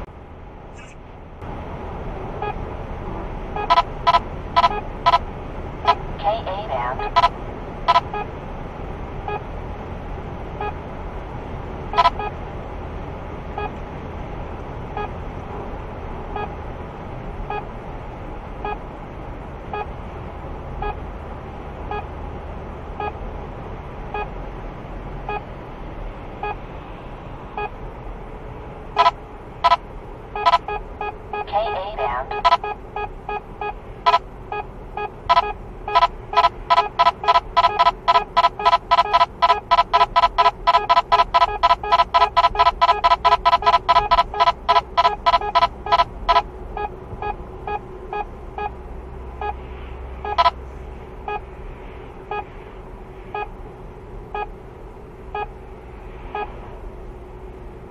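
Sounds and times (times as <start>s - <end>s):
car cabin road noise: 0.0s - 57.9s
radar detector beeping: 3.6s - 5.2s, 5.8s - 7.3s, 7.9s - 8.3s, 29.0s - 29.8s, 30.4s - 48.7s, 50.2s - 50.6s, 53.3s - 53.5s, 54.3s - 54.5s, 55.3s - 55.6s.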